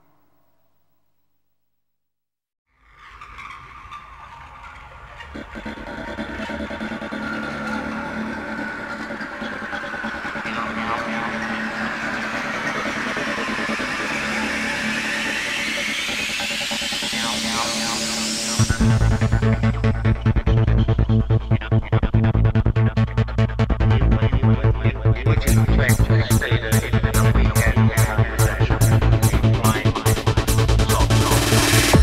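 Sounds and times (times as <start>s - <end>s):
low drone: 4.4s - 32.0s
filter sweep: 4.9s - 32.0s
synth textures: 5.2s - 21.3s
kick drum and bassline: 7.9s - 32.0s.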